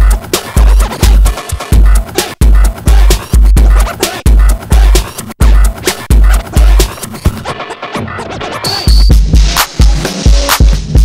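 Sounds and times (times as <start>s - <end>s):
heavy kick drum: 0.0s - 6.9s, 8.9s - 11.0s
electronic dance music: 0.0s - 11.0s
record scratching: 0.0s - 11.0s.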